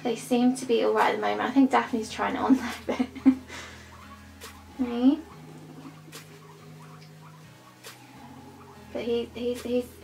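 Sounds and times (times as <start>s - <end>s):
guinea pig squeaks: 3.8s - 10.0s.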